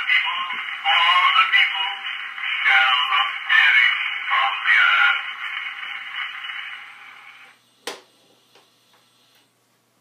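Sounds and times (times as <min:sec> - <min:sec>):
recorded voice from phonograph: 0:00.0 - 0:07.6
phonograph surface hiss: 0:00.0 - 0:10.0.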